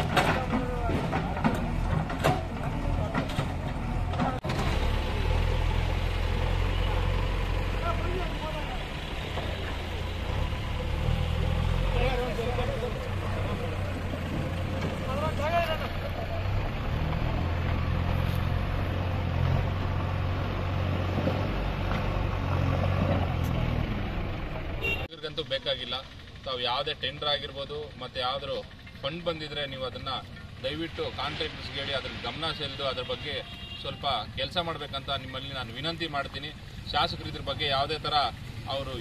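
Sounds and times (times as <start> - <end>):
diesel engine running: 0.0 - 39.0
people talking: 7.8 - 9.0, 15.0 - 16.5.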